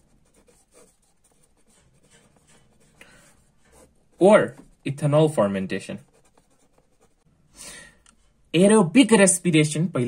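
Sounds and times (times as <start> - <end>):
marker scratching on paper: 0.0 - 7.3.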